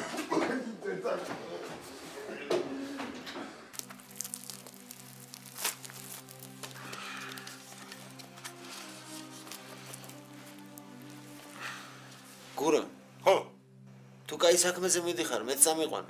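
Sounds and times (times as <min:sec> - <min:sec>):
bread crust tearing: 0:03.8 - 0:11.6
low held chords music: 0:03.8 - 0:16.0.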